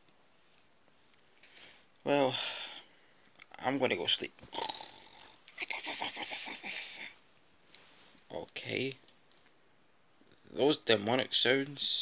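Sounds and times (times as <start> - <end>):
person making rattling growl: 4.5 - 5.4.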